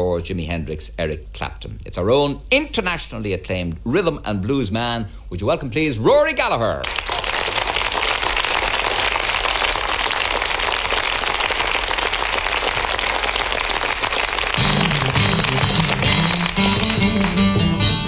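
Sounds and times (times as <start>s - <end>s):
audience applauding: 6.8s - 18.0s
music: 14.5s - 18.0s.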